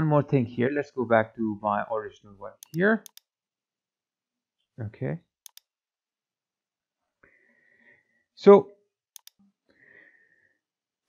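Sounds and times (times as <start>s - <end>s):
computer mouse clicks: 2.6s - 3.3s, 5.4s - 5.7s, 9.1s - 9.5s.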